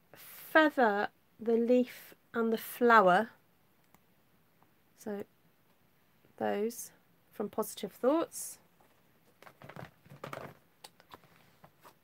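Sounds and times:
plastic cases clicking and rustling: 9.3 - 11.9.

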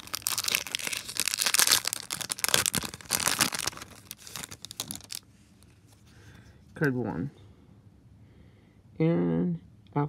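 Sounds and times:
foil wrapper tearing and crinkling: 0.0 - 5.2.

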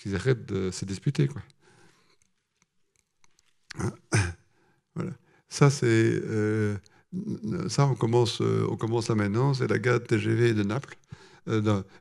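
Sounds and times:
faint clicks: 1.4 - 3.8
man's short voiced syllable: 3.7 - 4.4, 5.0 - 10.9.

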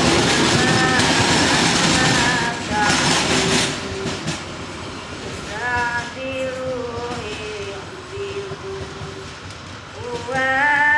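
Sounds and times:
freight train wagons rolling: 0.0 - 10.9.

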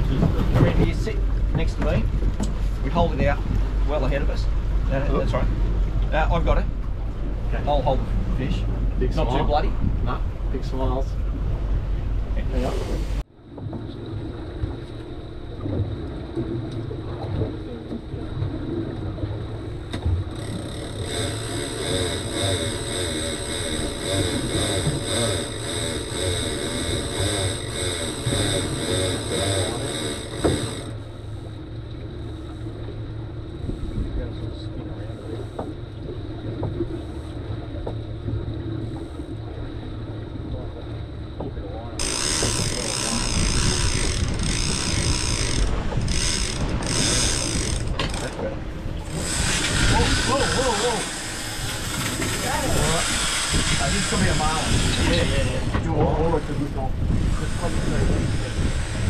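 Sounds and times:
boat engine rumbling: 0.0 - 59.0
fishing reel buzzing: 20.3 - 31.6, 42.0 - 55.8, 57.2 - 59.0.

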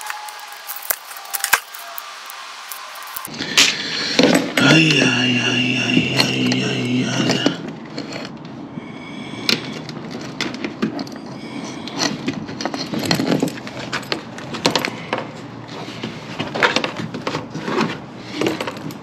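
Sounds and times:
hand tools clicking and rattling: 0.0 - 2.0, 9.5 - 15.5, 16.2 - 19.0.

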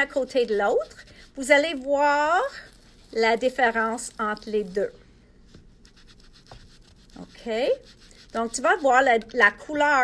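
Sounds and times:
foam tool scratching paper: 0.0 - 4.9, 5.5 - 10.0.

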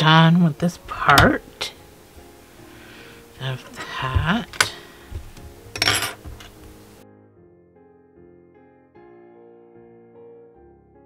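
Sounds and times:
yarn hat rustling: 0.7 - 7.0
soft thumps: 3.6 - 6.8.

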